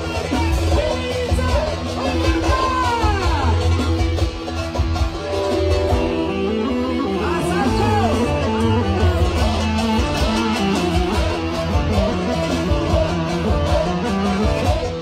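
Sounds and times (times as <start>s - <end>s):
live dance band music: 0.0s - 15.0s.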